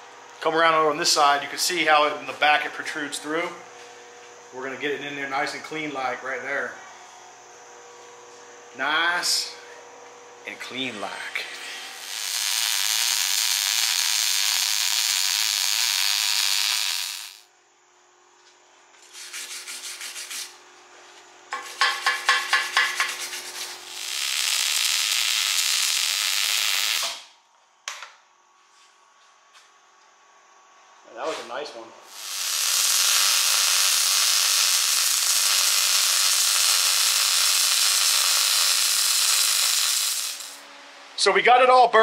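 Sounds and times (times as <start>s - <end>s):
arc welding hiss and crackle: 1.0s - 3.4s, 10.5s - 17.5s, 21.5s - 27.4s, 32.0s - 40.6s.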